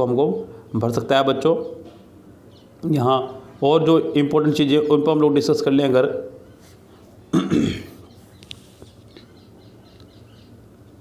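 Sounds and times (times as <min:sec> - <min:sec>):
man's throaty vocal noise: 0:07.3 - 0:08.0.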